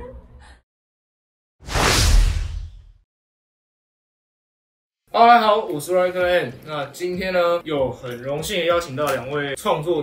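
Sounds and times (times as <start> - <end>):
whoosh sound effect: 1.6 - 2.9.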